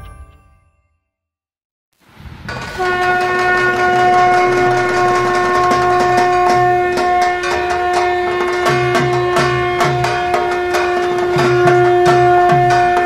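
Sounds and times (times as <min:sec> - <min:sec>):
train rumbling: 0:02.2 - 0:13.0
clattering train wheels: 0:02.5 - 0:13.0
train horn long note: 0:02.7 - 0:13.0.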